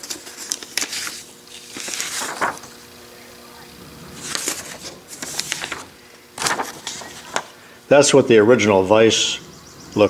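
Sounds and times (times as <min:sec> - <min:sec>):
paper rustling and crinkling: 0:00.0 - 0:03.1, 0:04.0 - 0:07.6.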